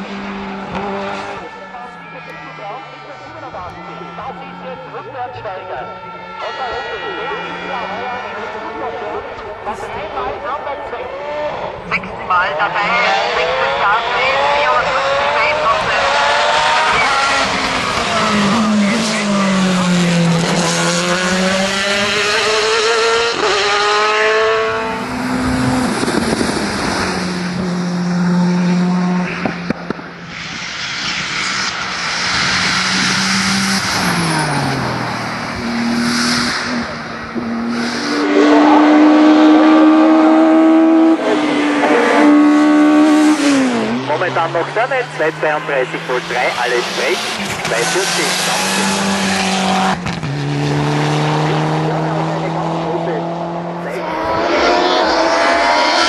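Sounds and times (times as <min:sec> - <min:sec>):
race car engines accelerating: 0:00.0 - 0:56.0.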